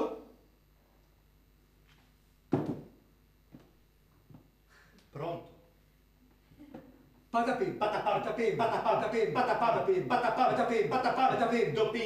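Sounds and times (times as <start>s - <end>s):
heavy thump on metal chair: 2.5s - 3.0s
faint knock: 2.5s - 3.7s.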